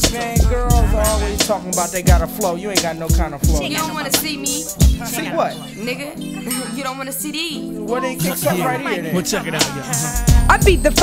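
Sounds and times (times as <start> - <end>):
rapping over drum beat and bass: 0.0 - 5.7, 7.8 - 11.0.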